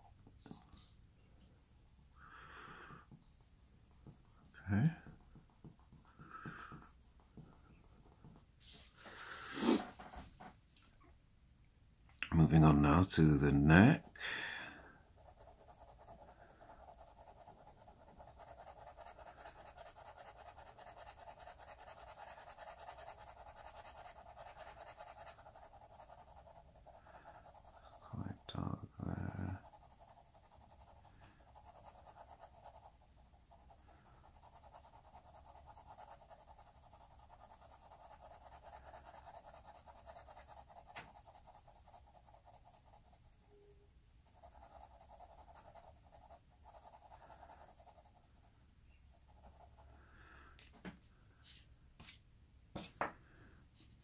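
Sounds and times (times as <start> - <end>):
pencil scratching on paper: 2.7 - 10.5, 12.5 - 50.8, 52.8 - 53.1.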